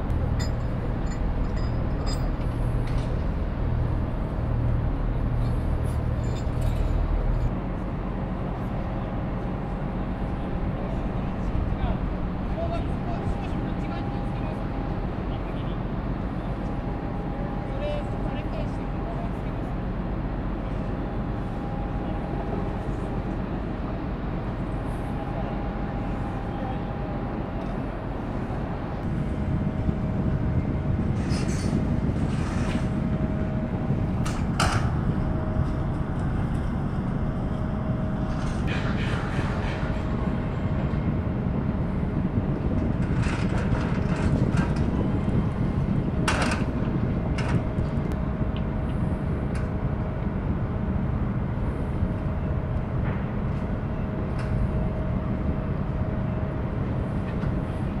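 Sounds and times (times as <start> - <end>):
low machinery rumble: 0.0 - 58.0.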